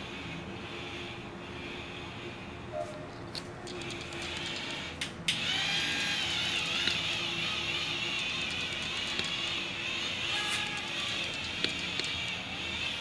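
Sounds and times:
high motor whine: 0:03.8 - 0:13.0.

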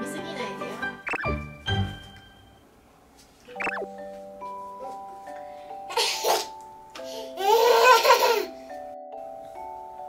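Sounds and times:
music of held tones: 0:03.5 - 0:10.0
toddler high-pitched laugh: 0:07.4 - 0:08.5.

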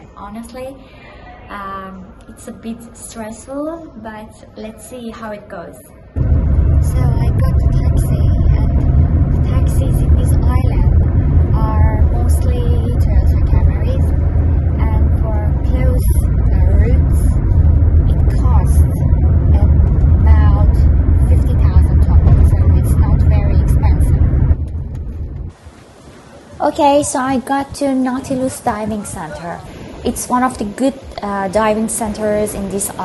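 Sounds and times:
people talking: 0:00.0 - 0:06.0, 0:06.8 - 0:14.1, 0:14.7 - 0:17.4, 0:18.0 - 0:24.3, 0:26.5 - 0:33.0
car engine and road noise: 0:06.2 - 0:26.3.

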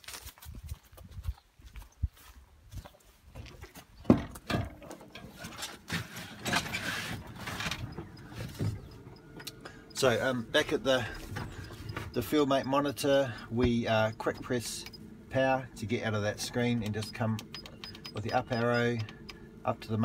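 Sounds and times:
footsteps on grass: 0:00.0 - 0:04.0
scuffing and rustling: 0:00.0 - 0:04.0.

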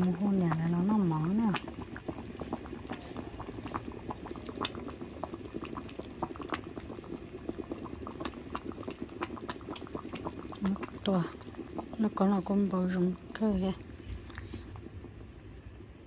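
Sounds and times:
soup boiling and bubbling: 0:00.0 - 0:16.0.

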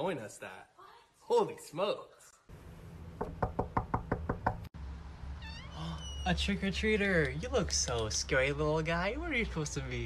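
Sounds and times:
knuckles knocking on door: 0:03.2 - 0:04.7.

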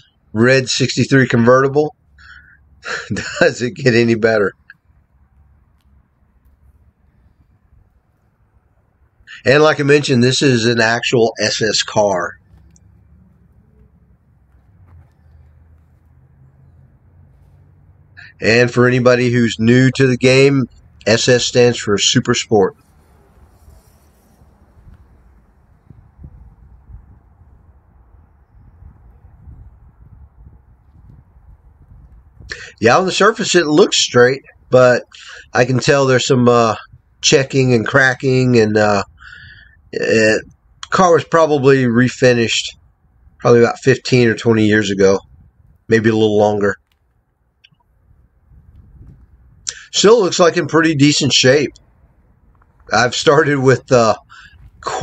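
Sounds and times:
man speaking: 0:00.4 - 0:04.7, 0:09.3 - 0:12.4, 0:18.2 - 0:22.8, 0:32.5 - 0:39.2, 0:40.0 - 0:42.8, 0:43.4 - 0:45.2, 0:45.9 - 0:46.8, 0:49.7 - 0:51.8, 0:52.9 - 0:55.0
wind rumble on microphone: 0:22.7 - 0:32.7, 0:36.8 - 0:37.2, 0:45.2 - 0:45.9, 0:47.8 - 0:49.7, 0:54.2 - 0:55.0.

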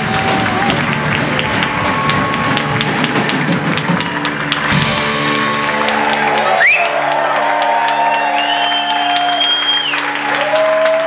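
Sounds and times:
drum kit hits: 0:00.0 - 0:06.3
live band playing: 0:00.0 - 0:10.9.

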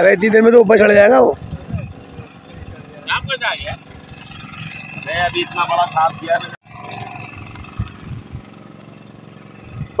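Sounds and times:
boat engine running: 0:00.0 - 0:10.0.

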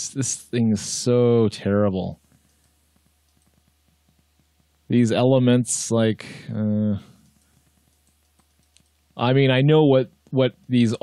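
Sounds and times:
low steady hum: 0:00.0 - 0:11.0
rapid irregular clicking: 0:02.2 - 0:06.0, 0:07.0 - 0:11.0.

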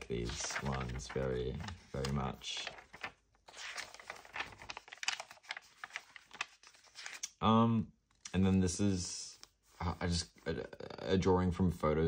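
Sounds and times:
paper pages turning: 0:00.0 - 0:07.4.

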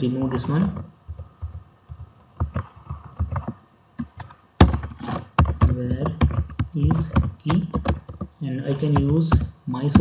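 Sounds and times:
computer keyboard keystrokes: 0:05.4 - 0:08.3.

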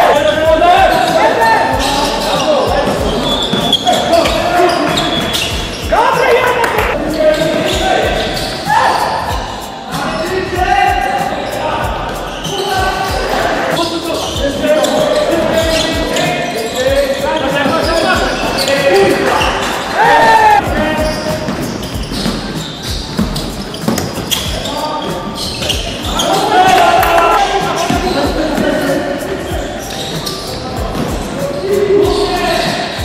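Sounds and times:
players calling out: 0:00.0 - 0:33.0.

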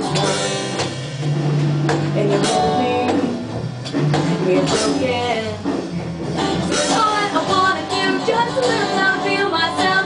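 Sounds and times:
drums: 0:00.0 - 0:10.0
strummed guitar: 0:00.0 - 0:10.0.

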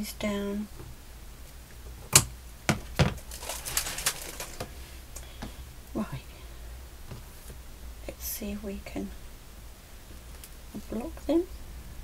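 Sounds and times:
crinkling of trimmed pieces: 0:02.2 - 0:05.3.

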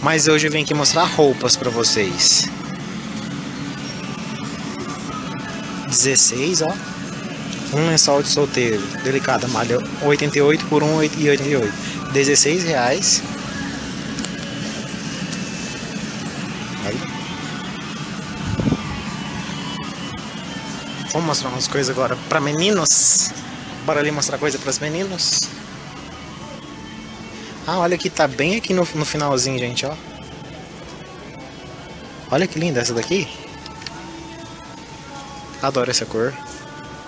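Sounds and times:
shop background hum: 0:00.0 - 0:37.0.

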